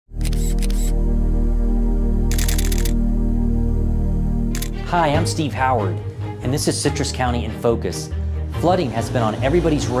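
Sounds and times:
camera shutter clicks: 0.2 - 1.0, 2.3 - 3.0, 4.5 - 4.8
intro music low chord: 0.2 - 10.0.

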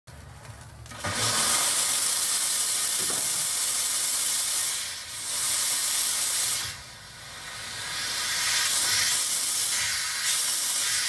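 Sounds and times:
steam hissing: 0.9 - 11.0.

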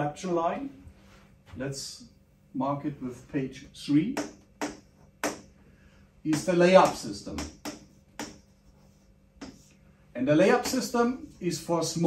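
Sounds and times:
pen tapping on writing board: 6.3 - 8.5, 9.4 - 9.7.

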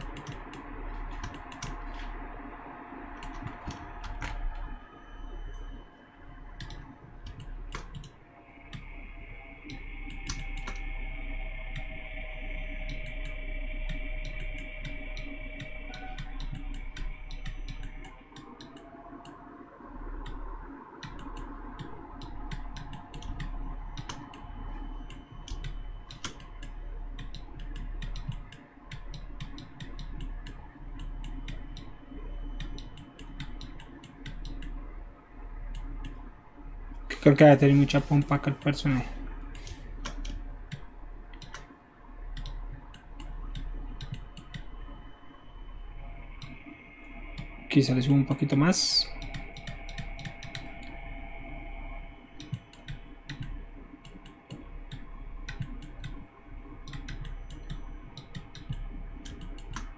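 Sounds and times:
faint background hum: 0.0 - 59.9.

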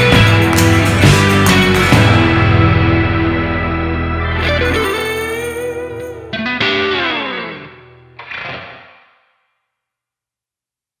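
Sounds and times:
electric guitar chords with effects: 0.0 - 9.6.

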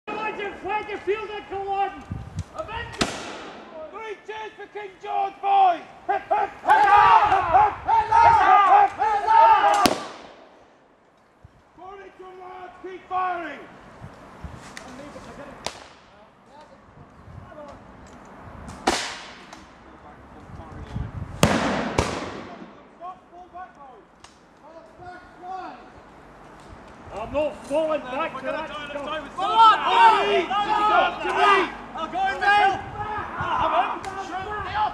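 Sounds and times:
sharp crack: 2.4 - 4.0, 9.6 - 11.2, 15.6 - 16.7, 18.7 - 19.8, 21.4 - 23.0
musket shot echoing: 3.0 - 3.8, 9.8 - 10.6, 21.4 - 22.9
men shouting cheers: 3.7 - 9.9, 28.2 - 34.9.

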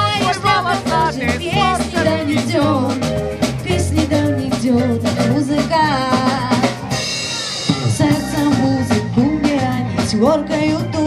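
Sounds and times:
saxophone and brass: 0.0 - 2.8
drum kit strokes: 0.0 - 11.0.

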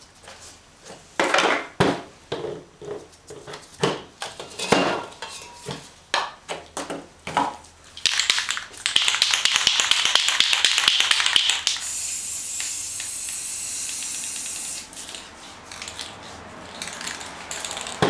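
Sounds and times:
spray can ball rattling: 8.0 - 18.0
spray paint hissing: 8.1 - 17.9.

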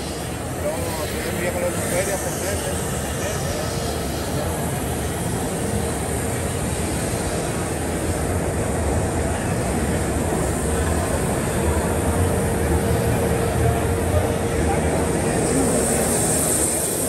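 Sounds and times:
faint constant hum: 0.0 - 17.0
machinery rumble: 0.0 - 17.0.

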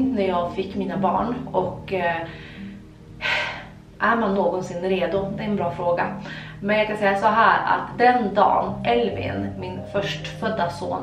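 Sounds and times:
soft background music: 0.0 - 11.0
woman's sharp in-breath: 6.2 - 6.6.

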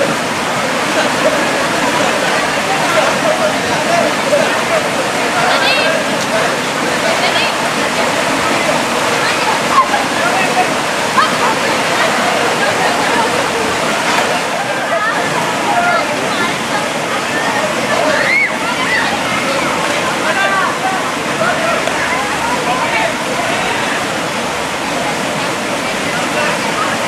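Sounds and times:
stream water rushing: 0.0 - 27.0
women chattering and calling: 0.0 - 27.0.

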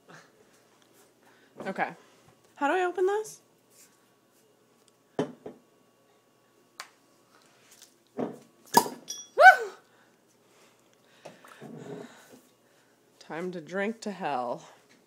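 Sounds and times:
high-pitched cry: 9.4 - 9.8.

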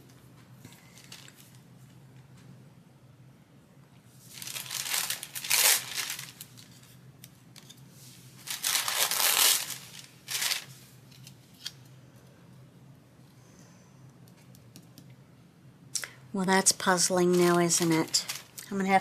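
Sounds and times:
wrapper crinkling: 0.8 - 1.6, 4.3 - 7.0, 8.4 - 11.3, 17.0 - 19.0.

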